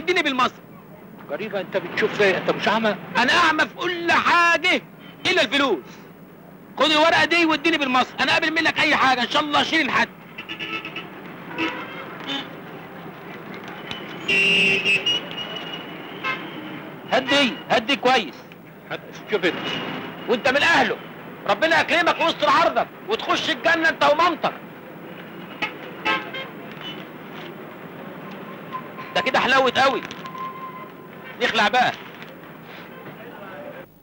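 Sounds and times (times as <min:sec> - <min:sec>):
street traffic: 0:00.0 - 0:34.0
car horn honking: 0:10.3 - 0:12.6, 0:13.8 - 0:17.8, 0:25.0 - 0:27.2, 0:28.2 - 0:31.4
faint horn toots: 0:10.4 - 0:12.6, 0:13.6 - 0:17.7, 0:25.1 - 0:27.5.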